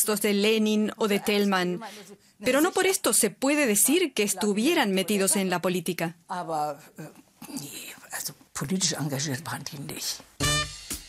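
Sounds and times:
person speaking: 0:04.1 - 0:10.4
person whispering: 0:07.4 - 0:08.5.

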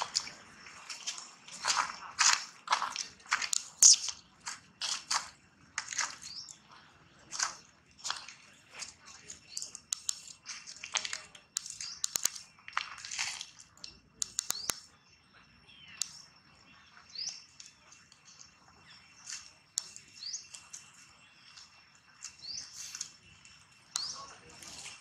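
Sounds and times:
small birds chirping: 0:00.0 - 0:25.0
sharp clicks: 0:03.3 - 0:04.2, 0:09.3 - 0:14.9, 0:15.9 - 0:16.3, 0:19.3 - 0:20.8, 0:23.9 - 0:24.3.

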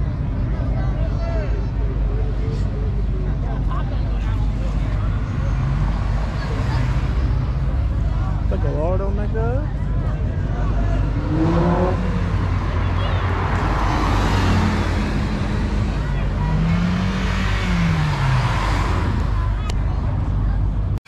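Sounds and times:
crowd voices: 0:00.0 - 0:21.0
car driving by: 0:10.8 - 0:19.7.

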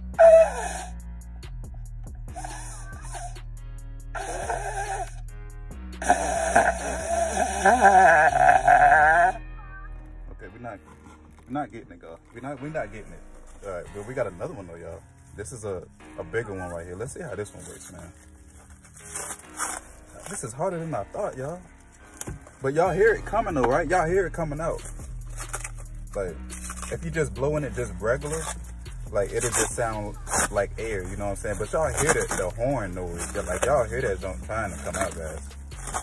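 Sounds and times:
plastic wrapping crinkling: 0:10.8 - 0:22.8, 0:24.7 - 0:27.0, 0:27.8 - 0:36.0.

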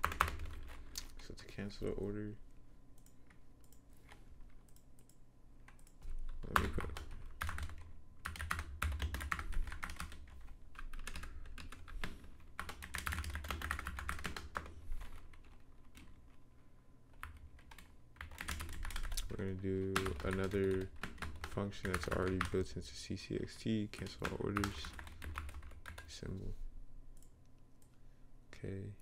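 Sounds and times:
computer keyboard typing: 0:00.0 - 0:01.2, 0:03.0 - 0:16.4, 0:17.1 - 0:22.7, 0:23.8 - 0:26.2.

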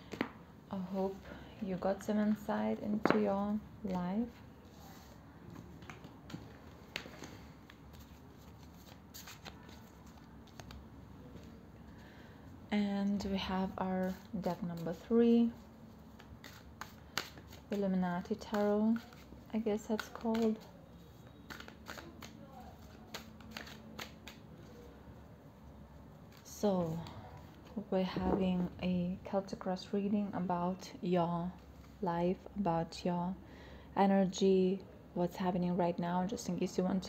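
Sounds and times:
cards rustling: 0:05.0 - 0:11.6, 0:14.0 - 0:25.0.

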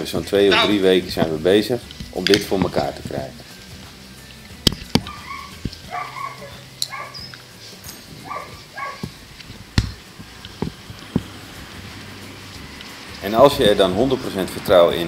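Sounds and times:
dog yipping and whining: 0:00.5 - 0:00.8, 0:05.0 - 0:07.4, 0:08.2 - 0:09.2.

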